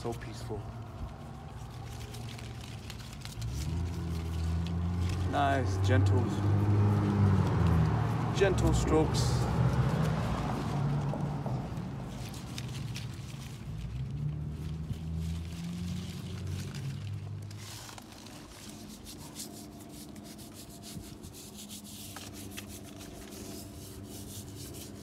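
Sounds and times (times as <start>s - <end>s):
paintbrush brushing on bark: 0.0s - 25.0s.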